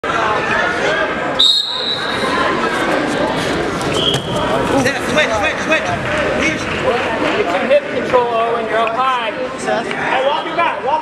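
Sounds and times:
crowd chatter echoing: 0.0 - 11.0
referee's whistle blast: 1.4 - 2.3.

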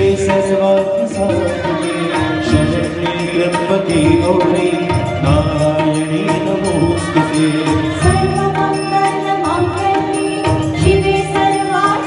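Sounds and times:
person singing: 0.0 - 12.0
tabla rhythm: 0.0 - 12.0.

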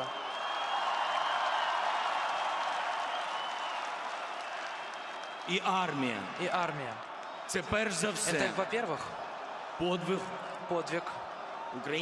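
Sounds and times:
stadium crowd applauding: 0.0 - 12.0.

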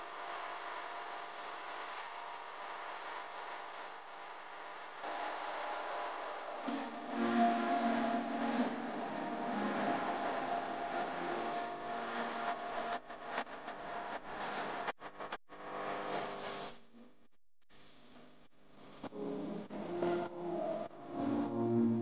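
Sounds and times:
steady tone: 5.0 - 15.4.

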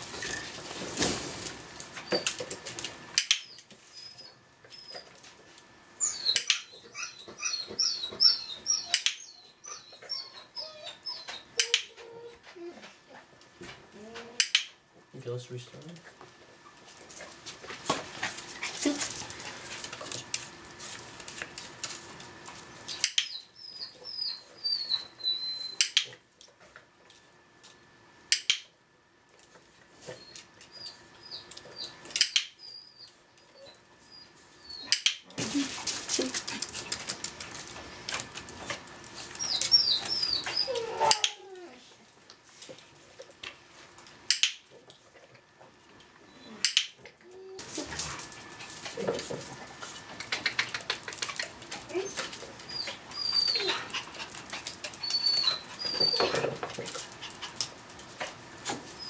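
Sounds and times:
dog whimpering: 6.0 - 13.3, 39.4 - 42.0, 46.3 - 48.0, 51.8 - 54.1, 55.0 - 56.6
dog scrabbling: 35.4 - 41.4, 47.6 - 59.0.

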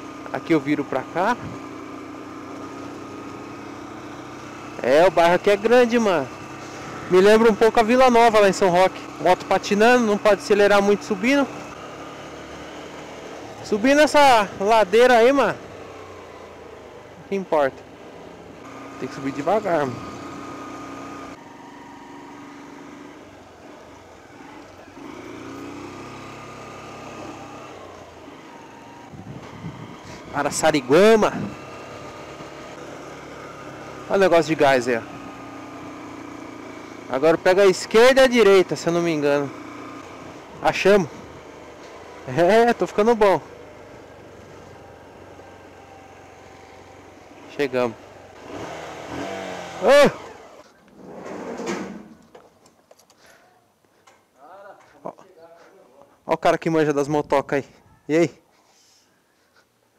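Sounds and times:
small motorcycle engine running: 0.0 - 50.8
clutch slipping: 52.0 - 54.3.

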